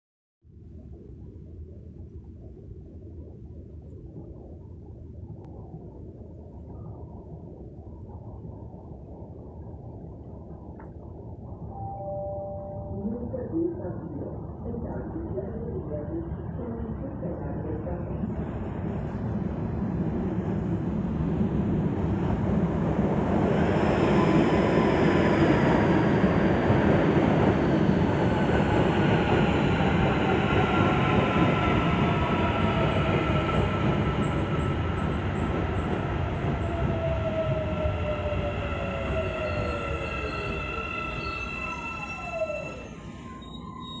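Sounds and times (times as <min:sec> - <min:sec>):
train rumbling on rails: 0:11.0 - 0:44.0.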